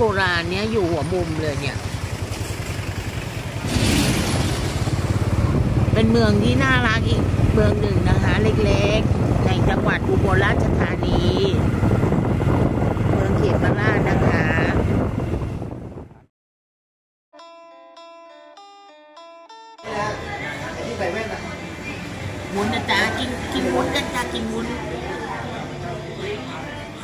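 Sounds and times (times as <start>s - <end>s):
woman's voice: 0.0s - 1.8s, 5.9s - 11.6s, 13.2s - 14.8s, 22.5s - 24.8s
motorcycle engine running: 0.0s - 15.9s
wind buffeting microphone: 4.1s - 16.2s.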